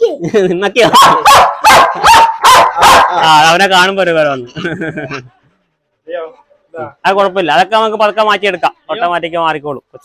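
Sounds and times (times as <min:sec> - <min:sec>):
dog barking loudly: 0:00.8 - 0:03.4.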